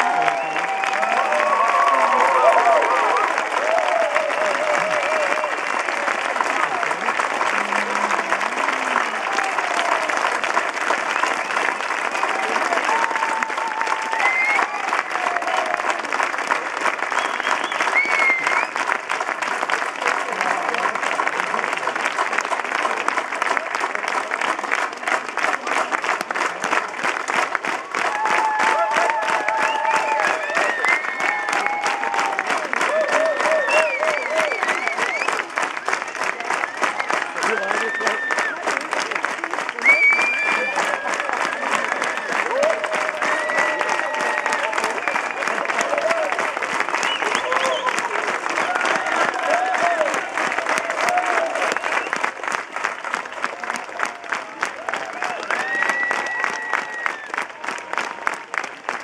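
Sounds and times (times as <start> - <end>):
audience applauding: 0.0 - 59.0
rhythmic clapping: 0.0 - 59.0
crowd shouting: 48.6 - 51.7.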